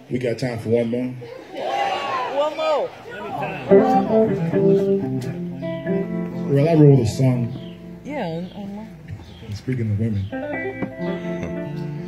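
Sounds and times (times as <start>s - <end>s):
guitars playing plucked notes: 3.4s - 12.0s.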